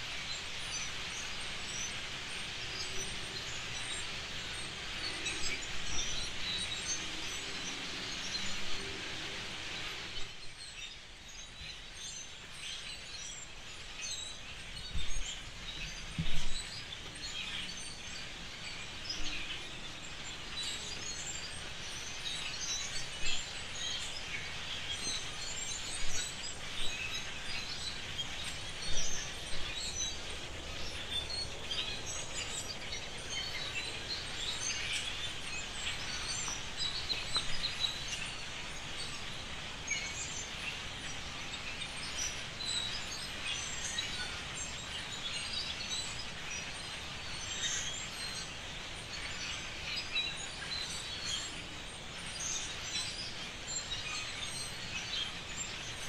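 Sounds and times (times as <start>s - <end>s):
birds chirping: 0.0s - 56.0s.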